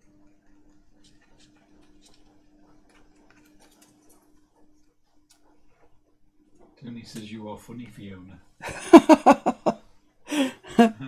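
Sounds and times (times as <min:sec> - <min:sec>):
paper rustling and ticking: 0:00.0 - 0:05.9.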